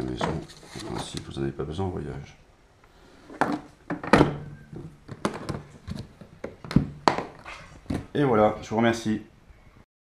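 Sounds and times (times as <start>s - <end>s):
plastic case lid thunk: 3.4s - 8.1s
plastic case knocks and clicks: 5.1s - 8.1s.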